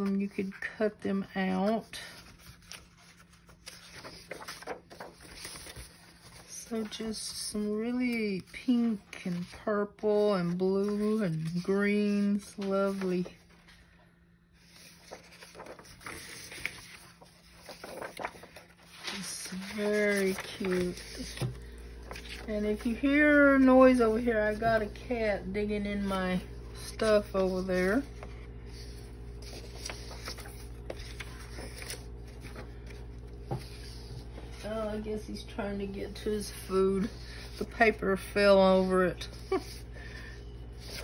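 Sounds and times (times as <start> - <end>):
paper rustling and crinkling: 1.4 - 14.0, 14.6 - 41.0.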